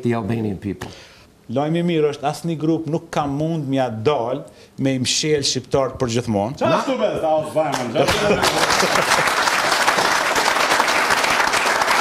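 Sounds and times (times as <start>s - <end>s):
audience applauding: 7.7s - 12.0s.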